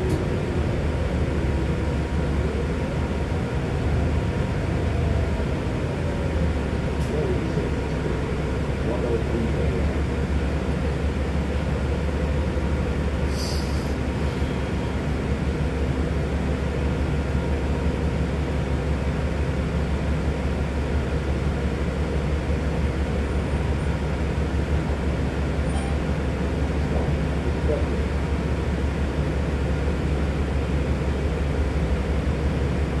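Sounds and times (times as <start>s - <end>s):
bus engine rumble inside cabin: 0.0s - 33.0s
brief air hiss: 13.3s - 14.0s.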